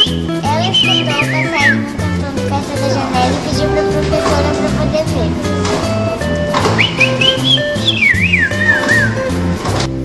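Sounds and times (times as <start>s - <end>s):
background music: 0.0s - 10.0s
high whistle: 6.7s - 9.3s.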